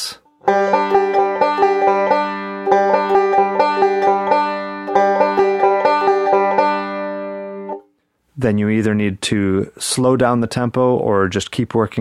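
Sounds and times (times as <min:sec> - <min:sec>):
banjo picked in rolls: 0:00.4 - 0:07.8.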